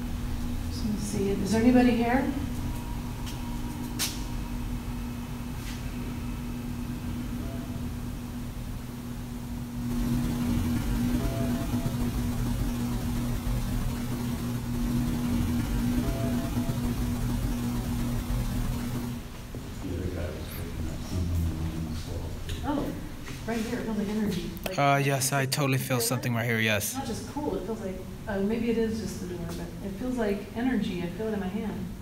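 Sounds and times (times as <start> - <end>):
room noise hiss: 0.0 - 32.0
steady low hum: 0.0 - 32.0.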